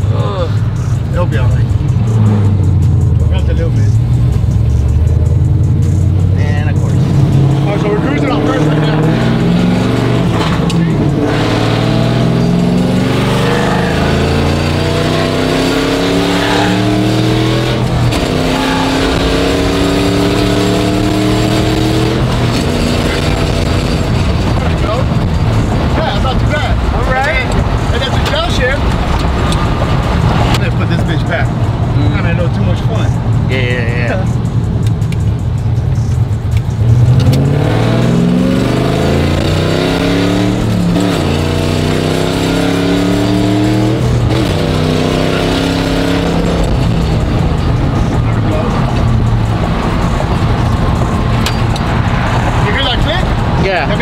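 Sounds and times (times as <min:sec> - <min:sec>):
road noise: 0:00.0 - 0:54.0
truck engine accelerating through gears: 0:00.0 - 0:54.0.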